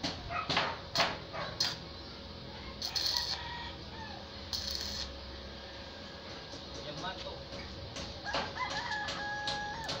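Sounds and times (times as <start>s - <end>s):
rooster crowing: 2.6s - 4.4s, 8.2s - 10.0s.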